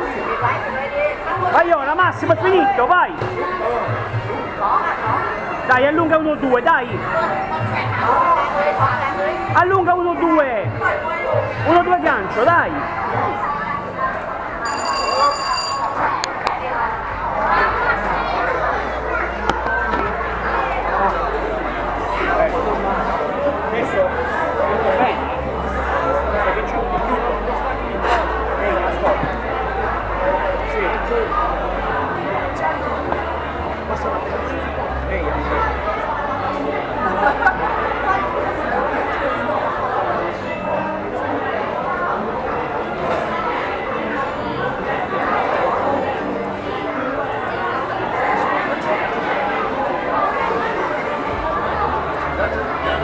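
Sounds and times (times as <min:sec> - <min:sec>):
crowd and voices: 0:00.0 - 0:53.0.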